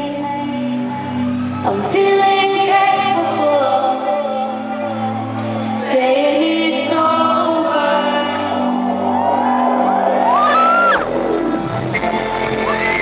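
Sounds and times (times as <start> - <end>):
woman singing: 0.0 - 9.2
live synth-pop music: 0.0 - 13.0
crowd shouting and whooping: 8.0 - 13.0.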